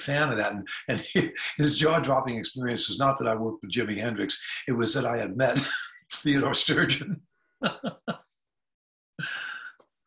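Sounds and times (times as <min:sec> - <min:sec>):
man laughing: 0:00.3 - 0:02.1, 0:05.4 - 0:06.2, 0:06.9 - 0:08.2, 0:09.2 - 0:09.7.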